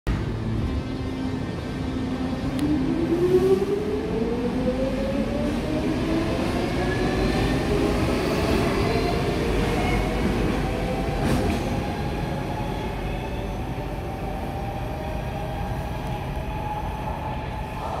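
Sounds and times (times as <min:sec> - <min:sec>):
train clack: 0:09.6 - 0:12.0.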